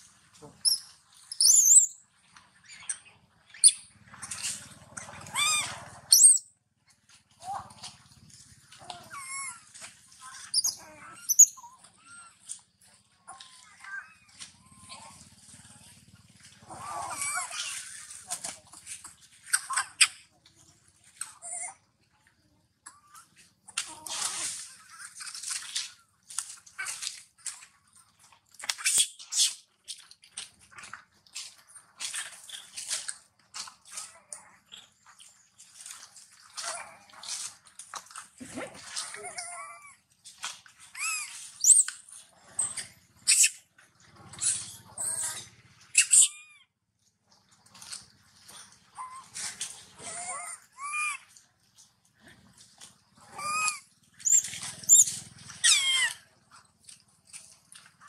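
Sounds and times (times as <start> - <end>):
monkeys squeaky calls: 0.6 - 2.0, 2.6 - 6.4, 10.3 - 12.3, 16.8 - 18.0, 41.0 - 42.0, 42.6 - 43.6, 44.4 - 46.6, 50.1 - 51.2, 53.3 - 56.2.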